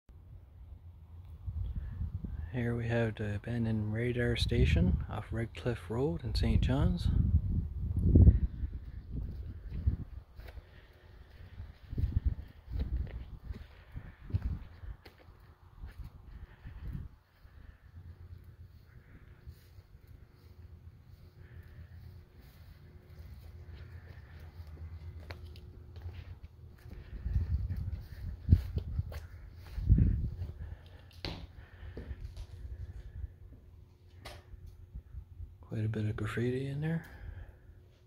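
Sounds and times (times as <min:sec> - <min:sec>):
low microphone rumble: 0:00.2 - 0:35.9
footsteps on grass and gravel: 0:09.1 - 0:32.9.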